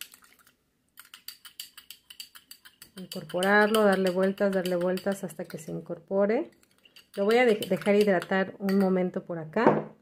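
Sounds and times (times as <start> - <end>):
metal spoon clinking glass bowl: 1.0 - 5.8, 6.5 - 9.0.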